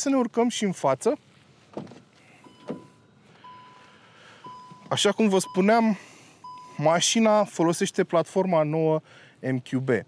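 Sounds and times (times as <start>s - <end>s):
electronic warning beep: 2.4s - 7.2s.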